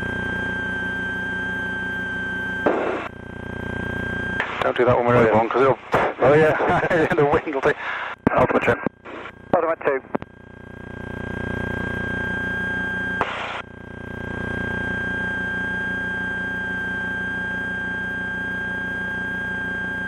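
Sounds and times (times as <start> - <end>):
steady high whine: 0.0 - 20.0.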